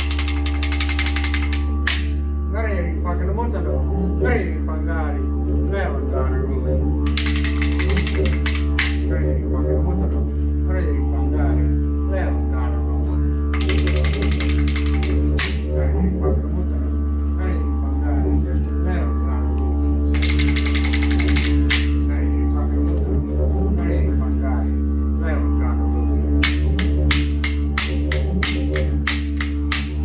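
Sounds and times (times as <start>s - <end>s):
wooden sticks clicking: 0.0s - 2.2s, 7.0s - 9.2s, 13.5s - 16.0s, 20.1s - 22.1s, 26.4s - 30.0s
didgeridoo drone: 0.0s - 30.0s.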